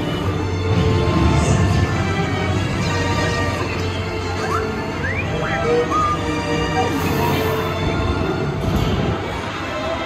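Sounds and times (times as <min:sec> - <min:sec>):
soundtrack music: 0:00.0 - 0:10.0.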